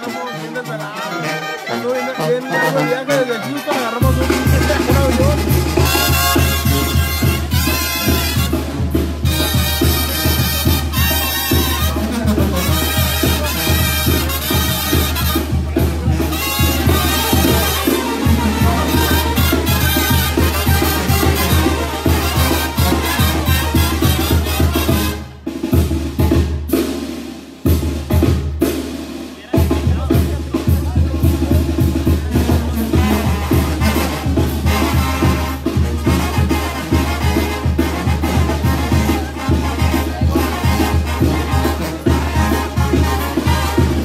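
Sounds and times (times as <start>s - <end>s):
brass band playing: 0.0s - 44.0s.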